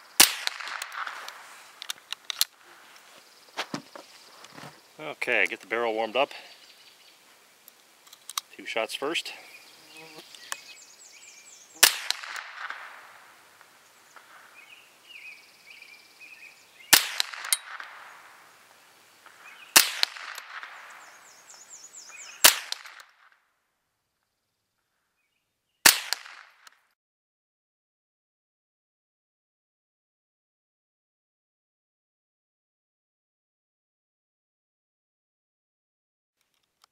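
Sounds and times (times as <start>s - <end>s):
rifle shots with echo: 0.2s - 1.4s, 11.8s - 13.4s, 16.9s - 18.6s, 19.7s - 21.3s, 22.4s - 23.3s, 25.8s - 26.7s.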